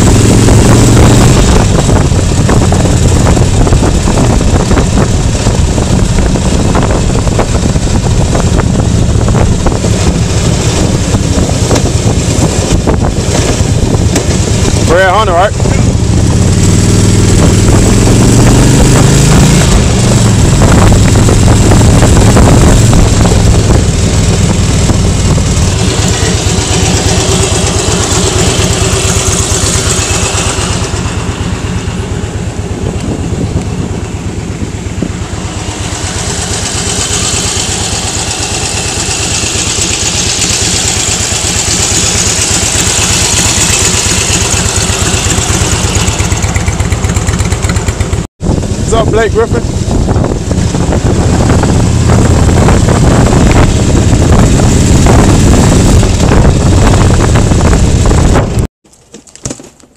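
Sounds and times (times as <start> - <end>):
wind noise on microphone: 0.0 - 58.7
motorcycle engine rumble: 0.0 - 59.9.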